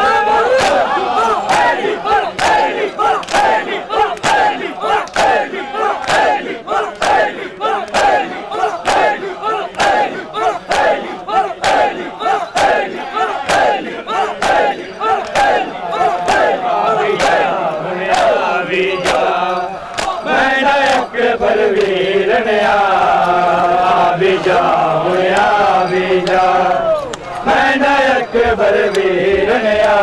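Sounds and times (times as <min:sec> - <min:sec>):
men shouting together: 0:00.0 - 0:20.4
hands slapping bare chests: 0:00.6 - 0:00.9, 0:02.4 - 0:07.3, 0:07.9 - 0:10.1, 0:11.6 - 0:11.9, 0:14.4 - 0:15.6, 0:19.0 - 0:19.3, 0:19.9 - 0:20.2.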